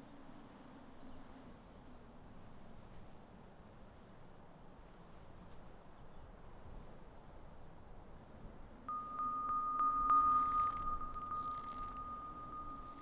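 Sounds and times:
faint low hum: 0.0 - 13.0
steady high tone: 8.9 - 13.0.

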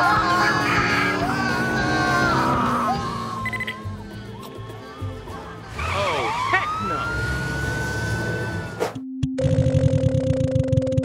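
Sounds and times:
police siren wailing: 0.0 - 8.8
background music: 0.0 - 11.0.

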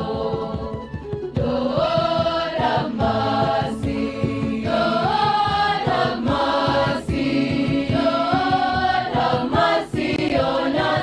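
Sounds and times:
choir singing a hymn: 0.0 - 0.8, 1.4 - 11.0
regular low beat: 0.0 - 11.0.

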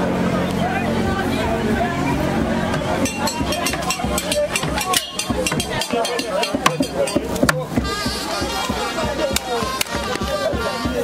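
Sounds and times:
voices chanting: 0.0 - 11.0
drums beating fast rhythm: 1.0 - 11.0.

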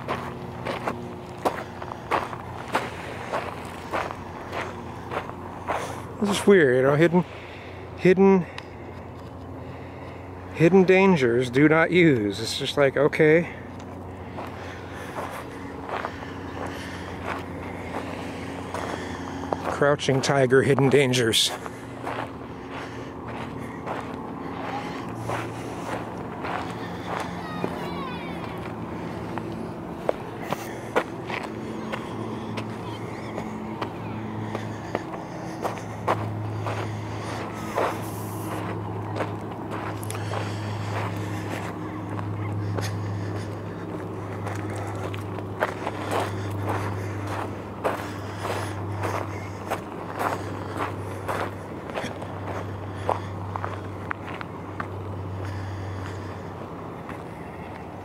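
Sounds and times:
low motor hum: 0.0 - 58.0
footsteps on concrete and gravel: 14.3 - 56.4.

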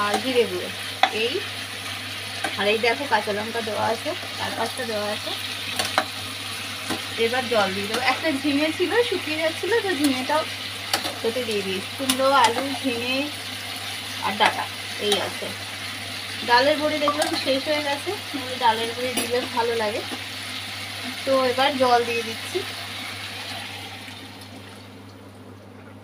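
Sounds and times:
vegetables sizzling: 0.0 - 25.2
spatula clicking against pan: 12.0 - 12.7.

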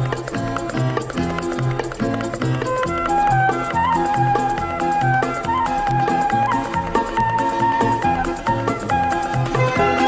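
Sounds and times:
lively small band music: 0.0 - 10.0.

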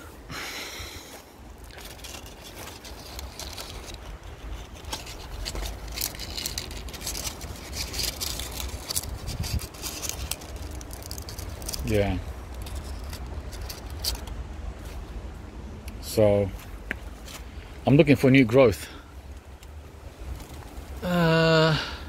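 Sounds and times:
dry leaves crackling: 0.0 - 15.4, 19.2 - 22.0.

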